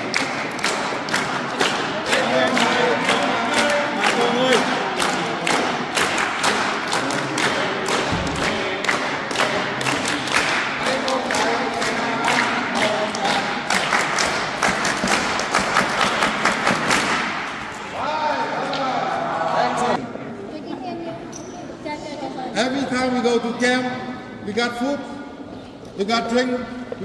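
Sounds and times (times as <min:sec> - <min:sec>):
people clapping in rhythm: 0:00.0 - 0:18.0
voices: 0:02.0 - 0:05.8.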